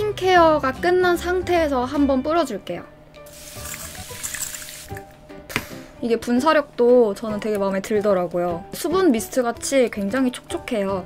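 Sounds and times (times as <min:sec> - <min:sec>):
spray bottle hissing: 0:03.3 - 0:05.0.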